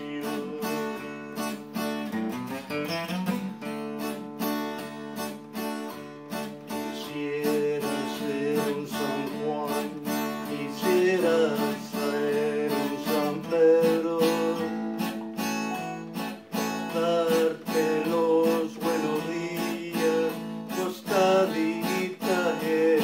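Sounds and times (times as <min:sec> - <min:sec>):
acoustic guitar strumming chords: 0:00.0 - 0:23.0.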